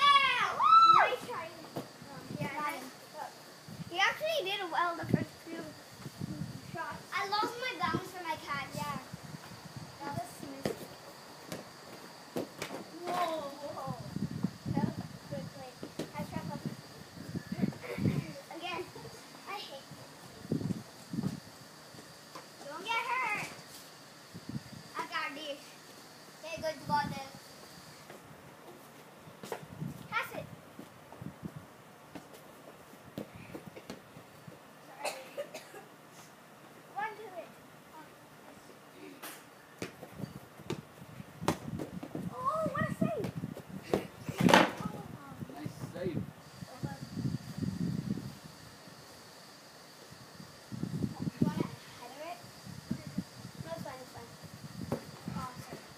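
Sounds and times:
child crying high-pitched: 0.0s - 1.3s.

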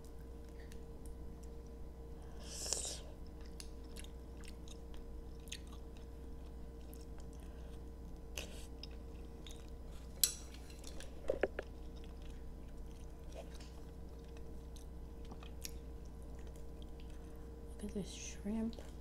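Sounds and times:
person chewing with mouth clicks: 2.4s - 9.8s, 10.8s - 17.4s.

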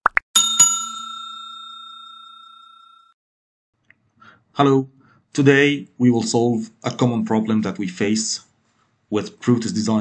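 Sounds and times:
notification bell chime: 0.4s - 3.1s.

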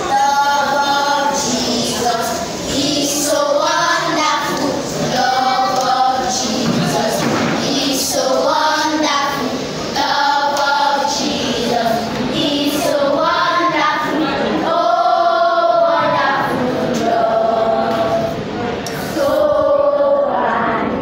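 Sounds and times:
children singing: 0.0s - 21.0s.

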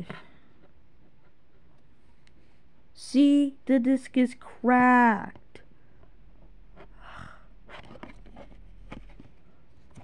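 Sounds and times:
low room hum: 0.0s - 10.0s
soft breath: 6.8s - 8.0s.

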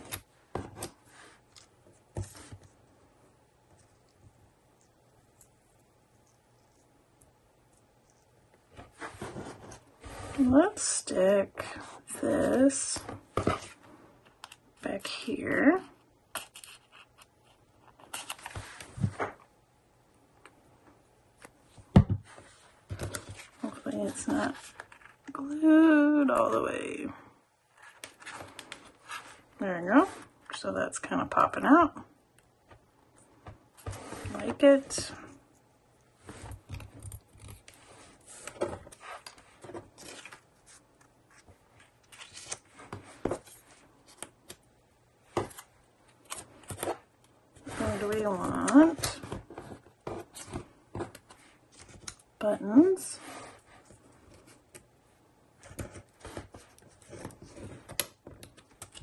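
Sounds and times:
paper rustling: 36.3s - 44.6s.

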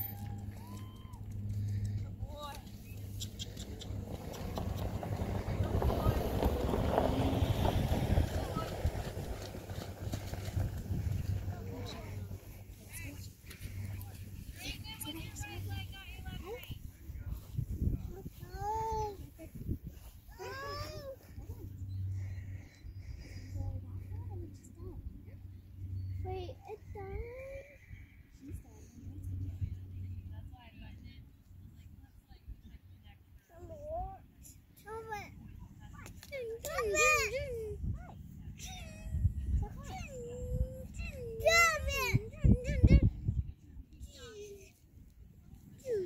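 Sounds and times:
faint distant voices: 0.0s - 46.0s
wind buffeting microphone: 0.3s - 33.0s, 35.0s - 44.4s.

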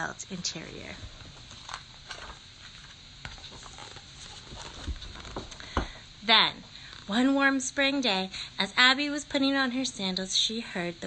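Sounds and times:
book pages rustling: 1.3s - 5.8s.

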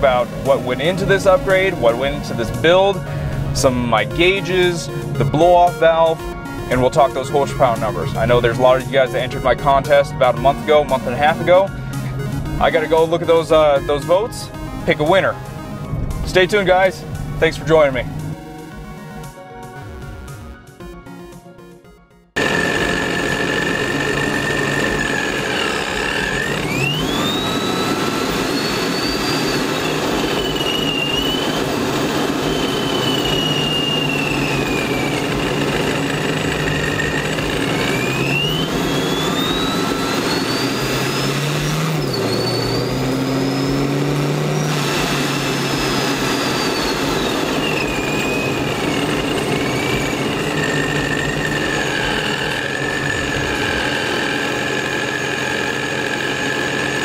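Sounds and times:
car engine running: 0.0s - 21.0s, 22.3s - 57.0s
supercharger whine: 0.0s - 21.4s, 22.3s - 57.0s.

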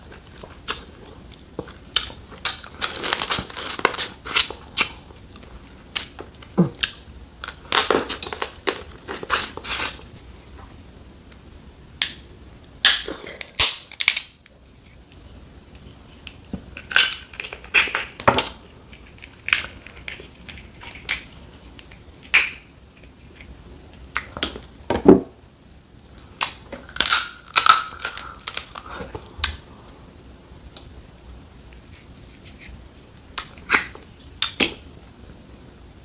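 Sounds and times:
crab shells cracking by hand: 16.8s - 22.6s, 26.4s - 29.6s.

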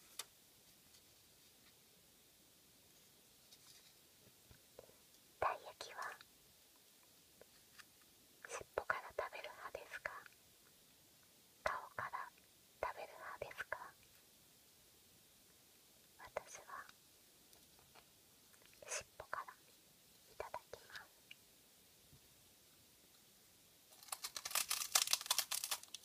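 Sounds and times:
person whispering: 4.8s - 6.3s, 8.4s - 10.4s, 11.6s - 14.0s, 16.2s - 17.0s, 18.6s - 19.7s, 20.3s - 21.2s.

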